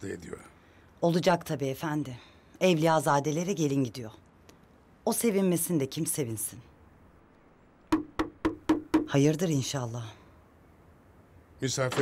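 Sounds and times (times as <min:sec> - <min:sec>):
knocks on wooden door: 0:07.9 - 0:09.2.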